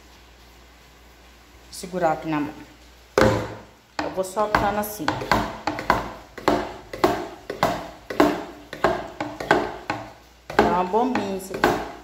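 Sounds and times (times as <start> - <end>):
hand pump sprayer plunger knocking: 3.2 - 12.0.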